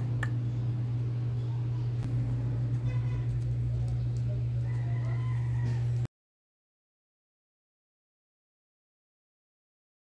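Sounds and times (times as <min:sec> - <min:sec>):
loud steady low hum: 0:00.0 - 0:04.8.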